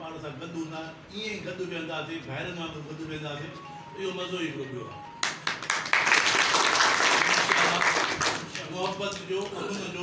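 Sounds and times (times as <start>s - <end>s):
people applauding: 5.2s - 9.8s.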